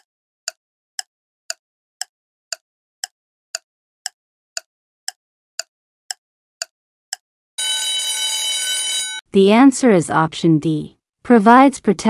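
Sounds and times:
timer ticks: 0.0 - 7.9
bell-like alarm ringing: 7.6 - 9.2.

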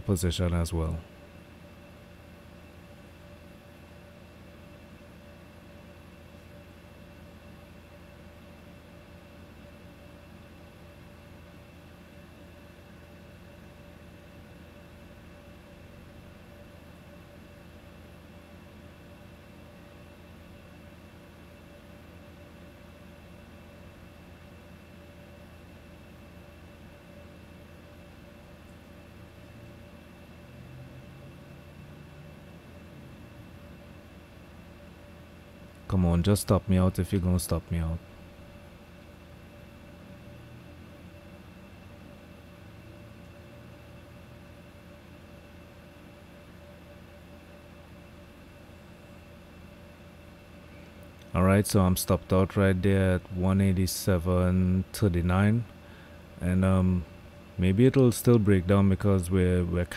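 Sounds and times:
low room hum and hiss: 0.0 - 59.9.

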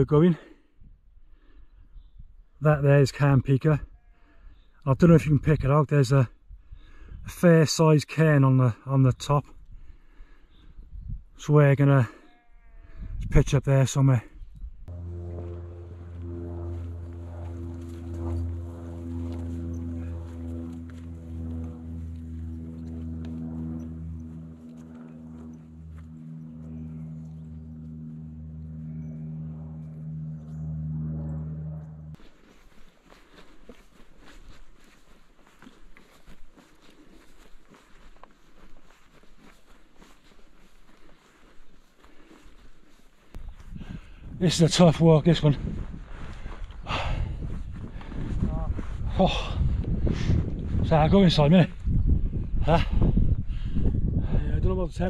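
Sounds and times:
low droning chords: 14.8 - 32.6
footsteps on grass: 14.9 - 28.6, 32.1 - 44.3, 45.3 - 51.0
rustling grass: 15.0 - 28.3, 32.2 - 44.3.

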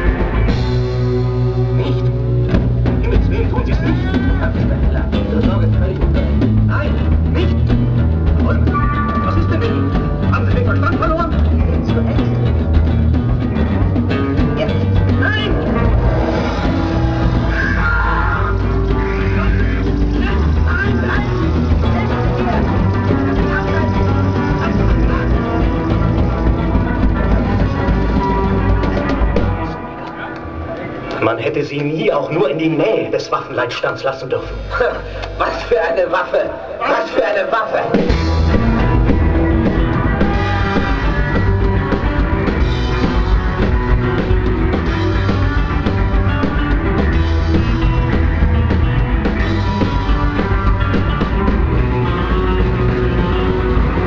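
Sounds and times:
low bass line: 0.0 - 31.4, 37.9 - 54.0
drums: 0.0 - 54.0
live band playing loud music: 0.0 - 54.0.

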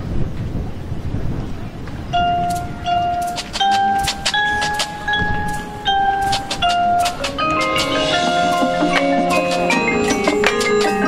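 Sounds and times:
mallet percussion notes ringing: 2.1 - 11.0.

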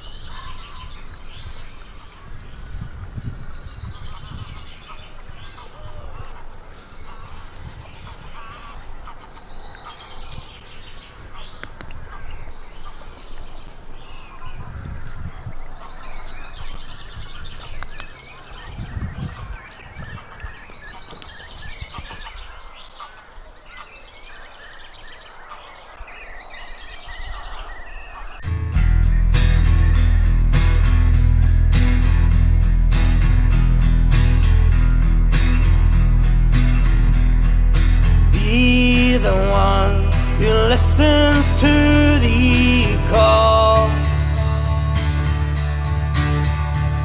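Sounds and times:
waterfowl calling: 0.0 - 2.5, 3.6 - 30.3
small birds chirping: 0.0 - 46.8
guitar music: 28.4 - 47.0
low rumbles: 28.4 - 47.0.

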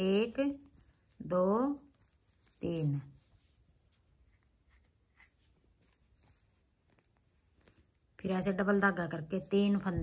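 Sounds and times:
yarn scratching on knitting needles: 0.0 - 10.0.

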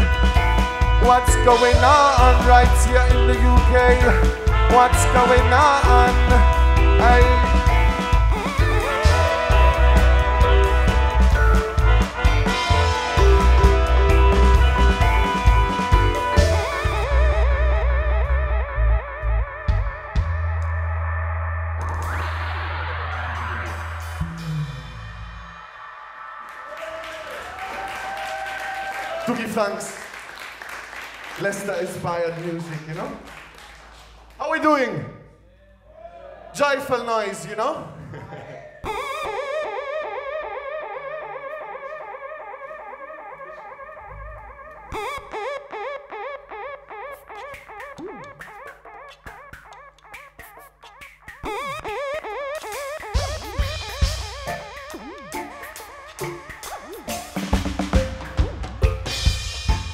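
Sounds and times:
deep bass notes: 0.0 - 25.6
swooping electronic effects tone: 7.0 - 26.5, 38.9 - 59.7
pulsing electronic siren warble: 38.9 - 50.1, 51.4 - 58.5.

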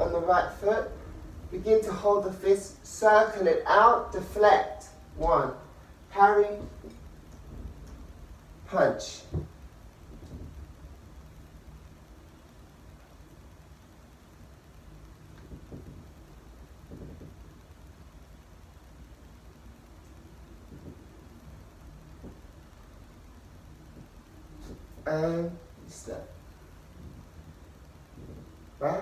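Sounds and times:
low background rumble: 0.0 - 29.0
bare feet on wooden floor: 15.4 - 16.1.

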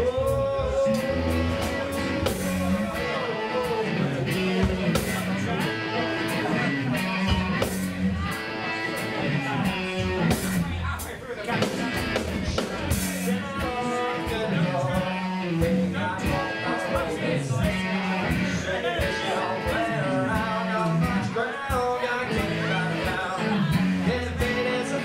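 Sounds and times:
man singing into a microphone: 0.0 - 7.2, 12.2 - 25.0
drum kit with cymbal hits: 0.0 - 25.0
electric guitar: 0.0 - 25.0.

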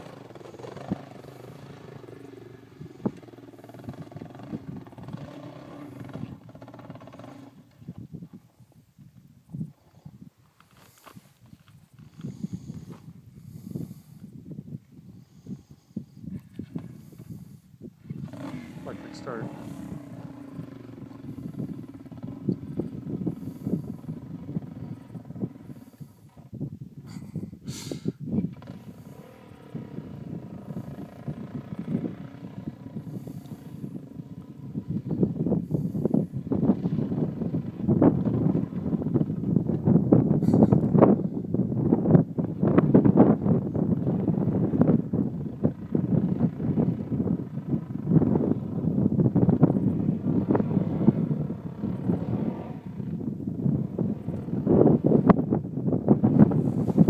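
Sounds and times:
dirt bike engine revving: 0.0 - 7.7, 18.1 - 25.9, 28.5 - 39.6, 44.0 - 55.5.

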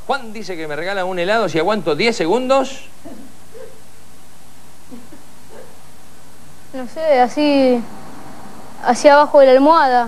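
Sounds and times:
low electrical hum: 0.0 - 10.0
tape hiss: 0.0 - 10.0
people talking: 0.1 - 3.8, 4.9 - 5.8, 6.8 - 7.9, 8.8 - 10.0.

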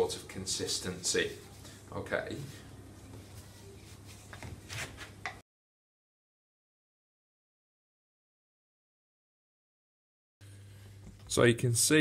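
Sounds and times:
low steady hum: 0.0 - 5.4, 10.4 - 12.0.

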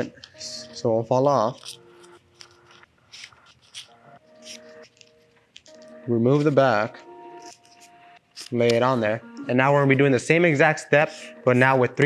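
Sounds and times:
paper rustling and crinkling: 1.4 - 6.6.

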